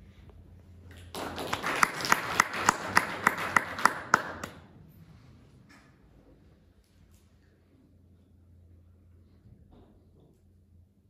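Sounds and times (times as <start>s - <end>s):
sharp evenly spaced claps: 0.9s - 4.7s
audience applauding: 1.0s - 4.6s.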